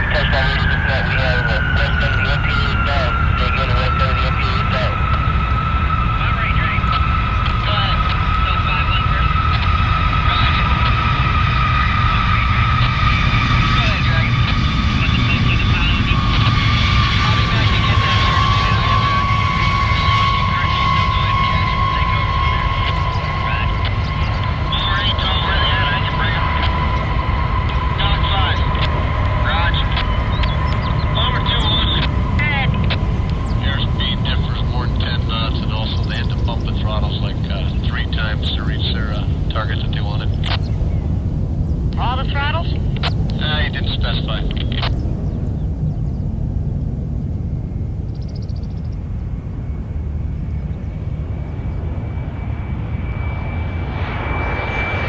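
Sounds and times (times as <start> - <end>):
jet engines rumbling and whining: 0.0 - 55.0.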